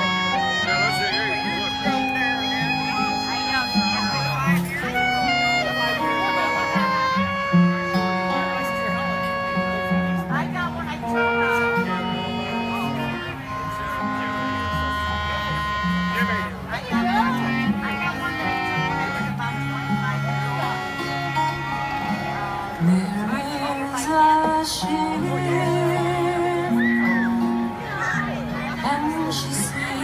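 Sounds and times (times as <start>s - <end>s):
band playing instrumental: 0.0s - 30.0s
voices: 0.0s - 30.0s.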